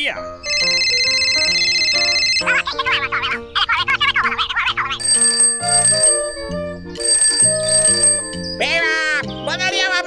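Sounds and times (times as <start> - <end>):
background music: 0.0 - 10.0
ringing bell bursts: 5.0 - 8.8.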